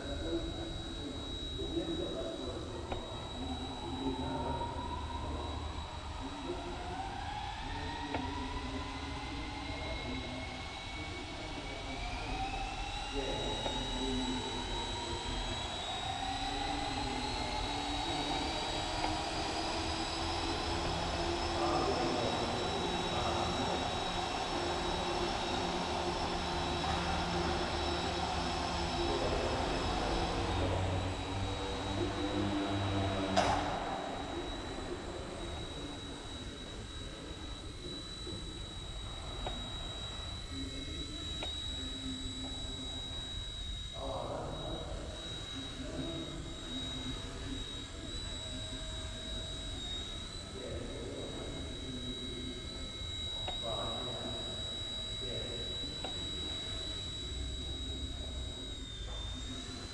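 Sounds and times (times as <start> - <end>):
toy helicopter rotor whining: 0.0 - 59.9.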